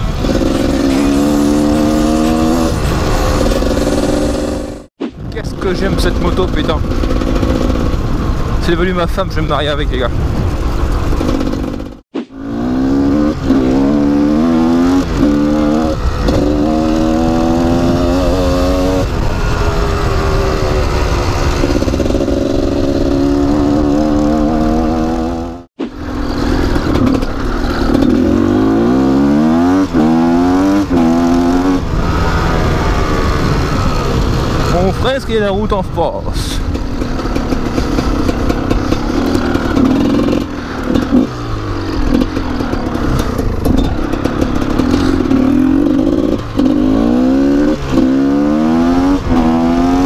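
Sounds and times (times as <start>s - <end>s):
two-stroke motorcycle engine revving: 0.0s - 4.9s, 5.6s - 50.0s.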